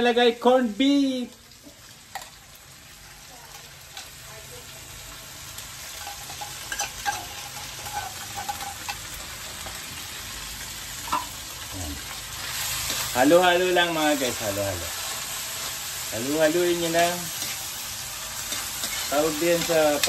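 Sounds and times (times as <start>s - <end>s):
meat sizzling in a wok: 0.0s - 20.0s
metal spoon stirring: 5.9s - 9.1s, 18.4s - 20.0s.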